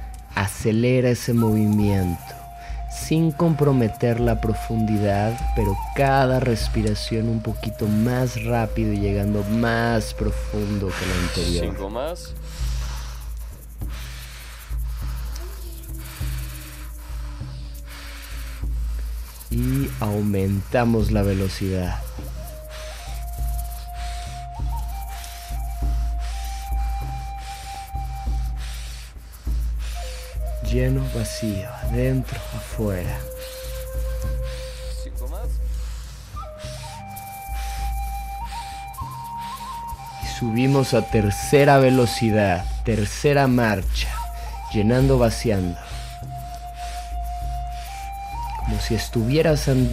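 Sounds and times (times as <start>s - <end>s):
ambient music with low drone: 0.0s - 49.9s
rapid deep breathing: 0.0s - 49.9s.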